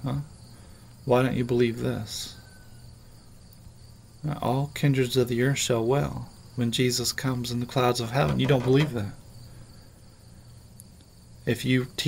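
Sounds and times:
faint high-pitched whine: 0.0 - 12.0
low steady hum: 0.0 - 12.0.

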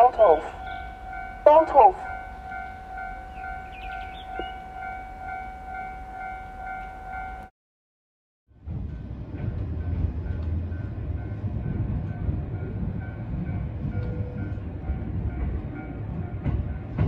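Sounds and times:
level-crossing warning bell: 0.0 - 7.5, 9.4 - 17.0
train car running rumble: 0.0 - 7.5, 8.5 - 17.0.

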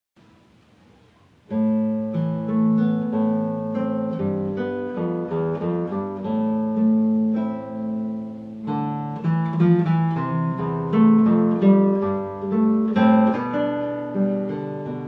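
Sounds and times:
faint hiss: 0.2 - 15.0
fingerpicked classical guitar: 0.2 - 15.0.

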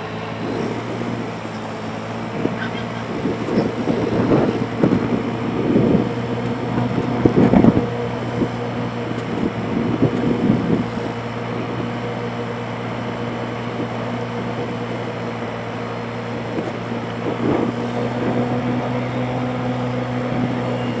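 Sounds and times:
wind buffeting microphone: 0.3 - 19.0.

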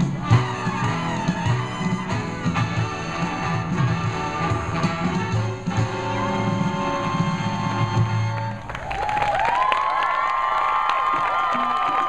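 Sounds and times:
big-band swing music: 0.0 - 8.8
audience cheering and whooping: 8.5 - 12.0.

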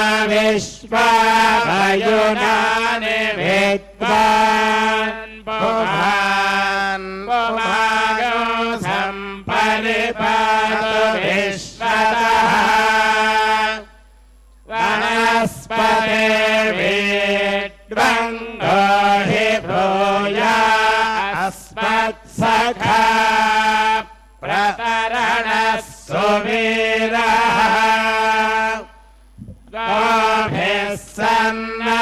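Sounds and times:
person chanting mantras: 0.0 - 14.0, 14.6 - 32.0.

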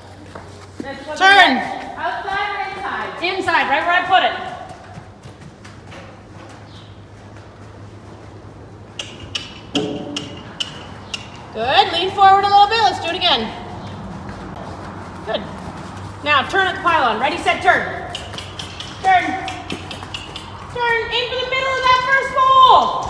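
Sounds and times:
horse hooves trotting: 0.0 - 23.0
woman calling out: 20.7 - 23.0.

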